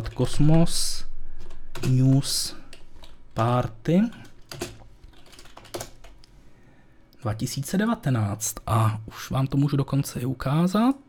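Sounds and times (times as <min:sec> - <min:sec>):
computer keyboard key clicks: 0:04.2 - 0:06.2.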